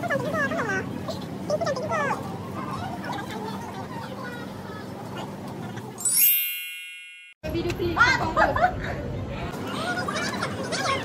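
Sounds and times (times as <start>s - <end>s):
shop ambience: 0.0s - 8.4s
bright chime: 6.0s - 7.4s.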